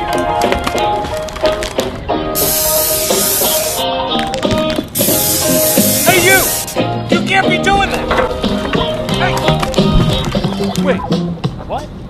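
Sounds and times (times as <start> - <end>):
music with a beat: 0.0 - 11.6
spray-paint can hissing: 2.4 - 3.8, 4.9 - 6.8.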